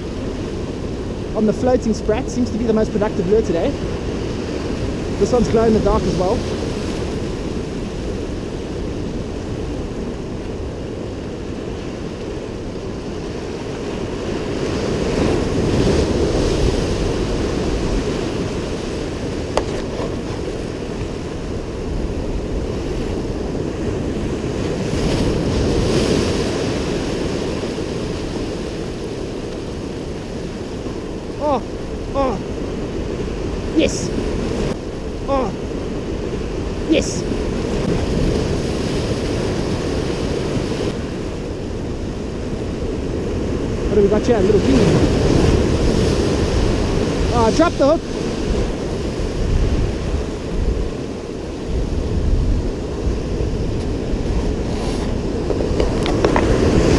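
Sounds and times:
surf breaking over rocks: 0.0 - 56.9
wind buffeting microphone: 0.0 - 56.9.

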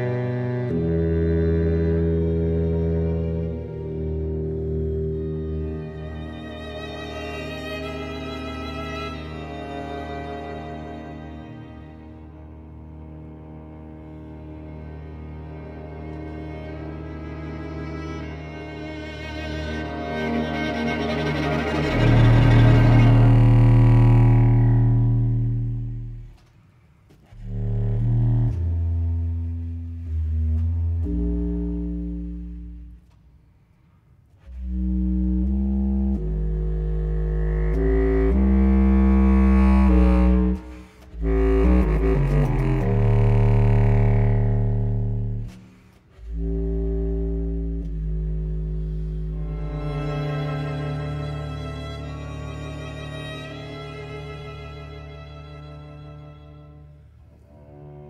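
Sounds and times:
baritone saxophone: 0.0 - 26.5, 27.2 - 33.3, 34.4 - 58.0
string ensemble: 0.0 - 33.2, 34.3 - 58.0
contrabass clarinet low held notes: 0.0 - 58.0.

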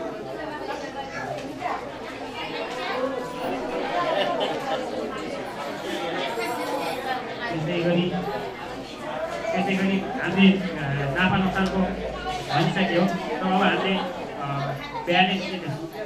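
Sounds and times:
indistinct crowd chatter: 0.0 - 16.0.

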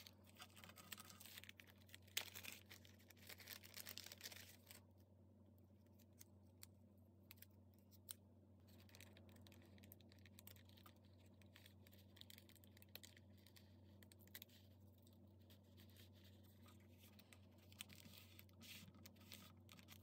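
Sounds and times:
paper rustling: 0.0 - 4.8.

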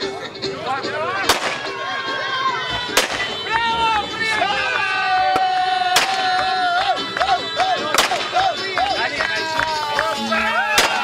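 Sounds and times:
crowd chatter: 0.0 - 11.0
champagne corks popping: 10.6 - 11.0.

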